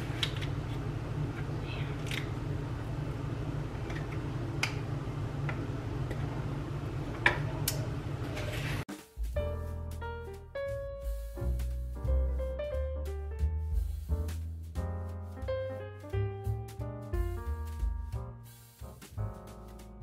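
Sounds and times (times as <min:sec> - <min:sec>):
steady low hum: 0:00.0 - 0:08.8
piano music: 0:08.9 - 0:20.0.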